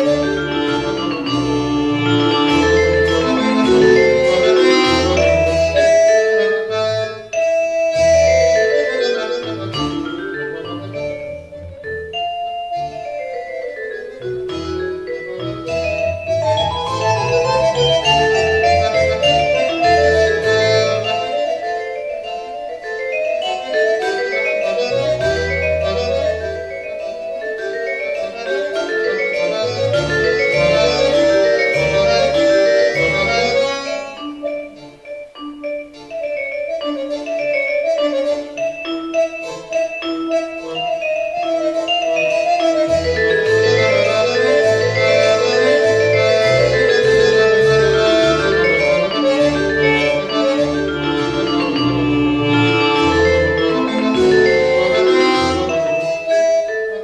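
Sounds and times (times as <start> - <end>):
accordion playing: 0.0 - 57.0.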